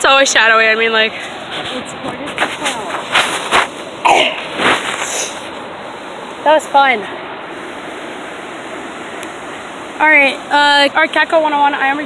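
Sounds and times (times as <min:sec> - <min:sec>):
rushing waterfall: 0:00.0 - 0:12.0.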